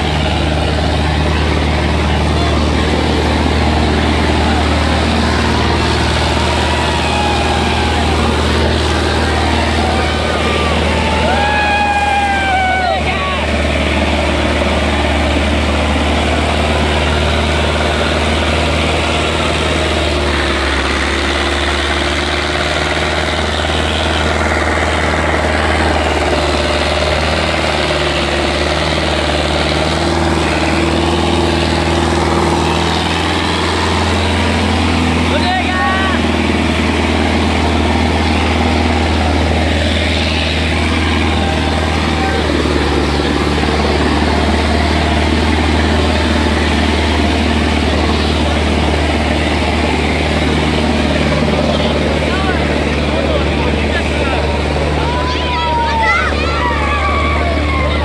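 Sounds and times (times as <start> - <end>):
tractor diesel engine under load: 0.0 - 58.0.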